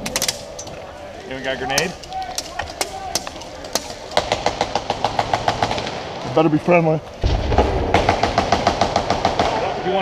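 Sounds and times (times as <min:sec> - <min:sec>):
airsoft gunfire: 0:02.8 - 0:06.2, 0:07.6 - 0:09.8.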